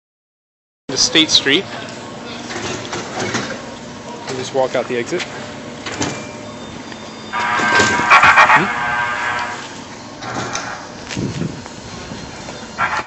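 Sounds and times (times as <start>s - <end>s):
station rumble: 0.9s - 13.0s.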